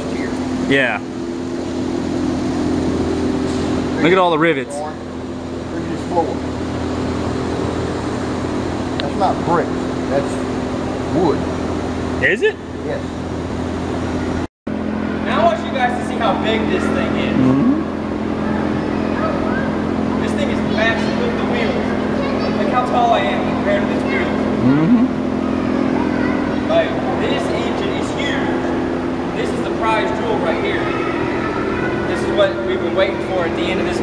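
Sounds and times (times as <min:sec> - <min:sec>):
mechanical hum with low drone: 0:00.0 - 0:34.0.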